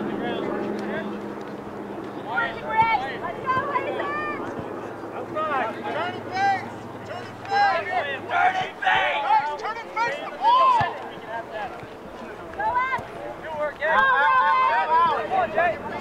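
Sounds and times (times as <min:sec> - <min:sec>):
background chatter: 0:00.0 - 0:16.0
players and spectators shouting: 0:02.2 - 0:16.0.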